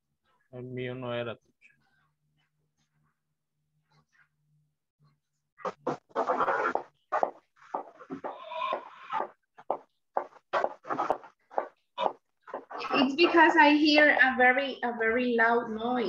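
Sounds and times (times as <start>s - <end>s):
loud animal calls: 6.1s - 7.3s, 8.0s - 9.4s.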